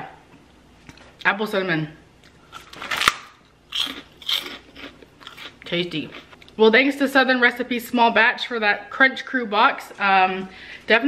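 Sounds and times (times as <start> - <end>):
crunchy chewing of pork rind: 2.2 - 6.6
sharp crunch of biting: 2.5 - 6.3.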